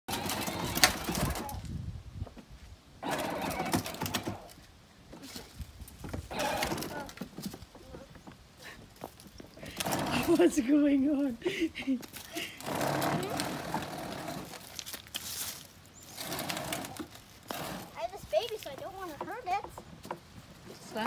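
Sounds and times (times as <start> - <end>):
toy vehicle motor and plastic wheels: 0.1 - 1.7, 3.0 - 4.6, 6.3 - 7.3, 12.0 - 19.8.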